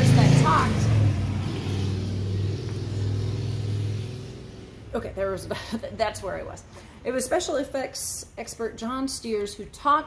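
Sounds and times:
passing car rumble: 0:00.0 - 0:05.6.

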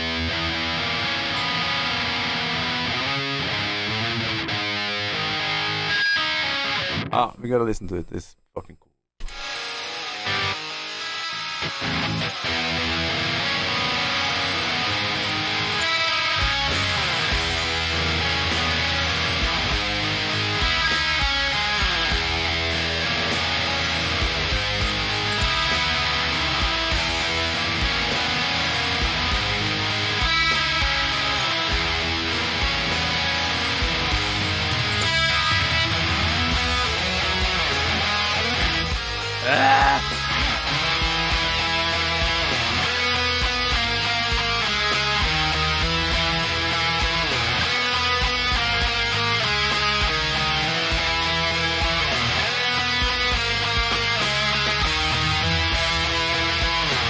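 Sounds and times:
distorted electric guitar riffs: 0:00.0 - 0:07.1, 0:09.2 - 0:57.0
bass and drums: 0:16.4 - 0:57.0.

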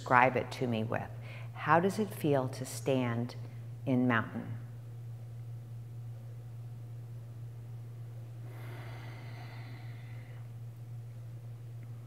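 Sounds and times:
low room hum: 0:00.0 - 0:12.0
soft breath: 0:08.4 - 0:10.6.

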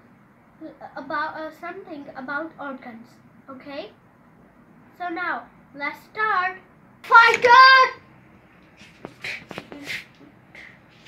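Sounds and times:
person shuffling and rustling: 0:08.5 - 0:11.0.

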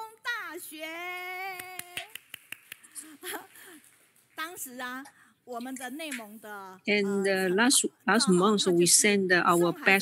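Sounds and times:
sharp hand claps: 0:01.5 - 0:03.0.

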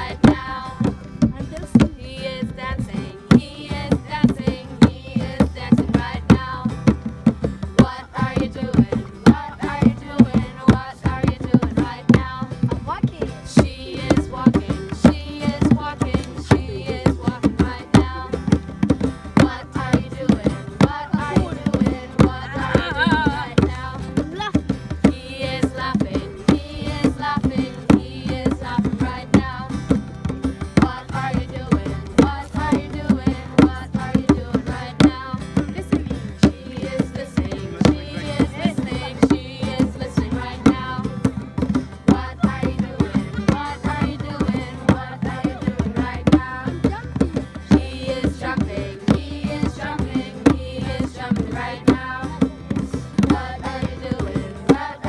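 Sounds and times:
hand drums beating: 0:00.0 - 0:55.0
strummed acoustic guitar: 0:00.0 - 0:55.0
voices singing a children's song: 0:00.0 - 0:55.0.

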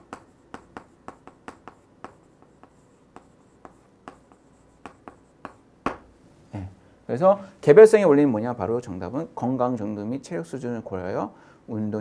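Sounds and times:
chalk tapping and scratching on chalkboard: 0:00.0 - 0:06.1.

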